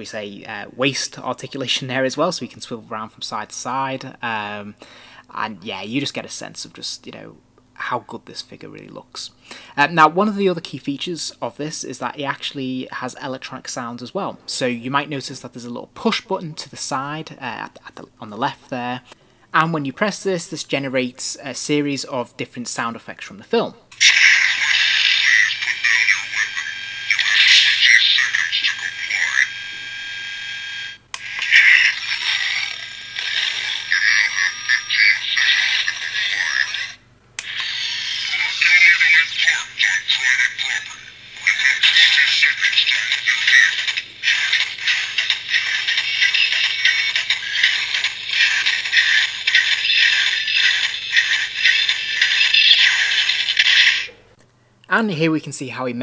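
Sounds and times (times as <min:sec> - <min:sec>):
tinny toy robot sound effects: 0:24.0 - 0:30.0, 0:31.2 - 0:54.2.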